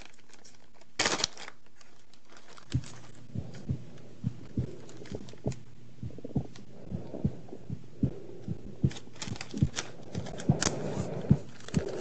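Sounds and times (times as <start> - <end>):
faint rustling clicks: 0.0 - 7.4, 8.0 - 12.0
muffled heartbeat thumps: 2.8 - 12.0.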